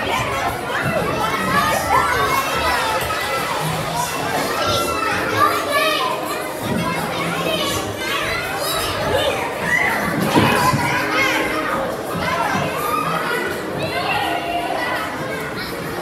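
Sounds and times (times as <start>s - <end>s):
children shouting and squealing: 0.0s - 16.0s.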